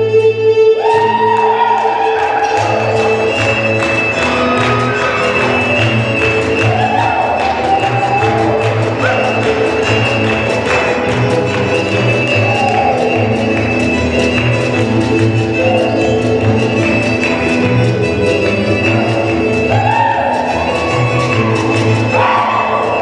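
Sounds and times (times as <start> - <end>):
fiddle-led dance music: 0.0 - 23.0.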